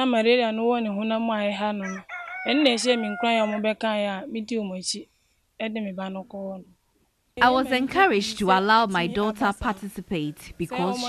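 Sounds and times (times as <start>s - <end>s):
rooster crowing: 1.8s - 3.7s
woman speaking: 7.4s - 11.0s.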